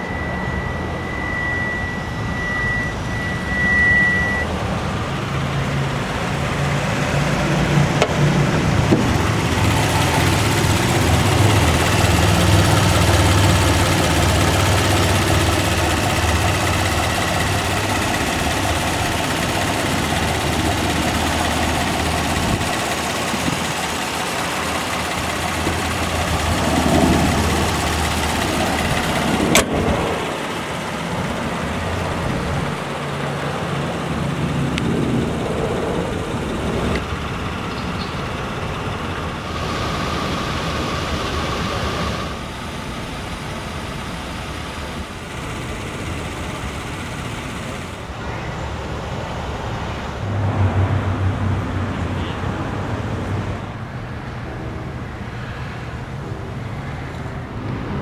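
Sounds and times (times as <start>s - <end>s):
high steady beep: 0.0s - 4.6s
car engine idling: 0.0s - 48.3s.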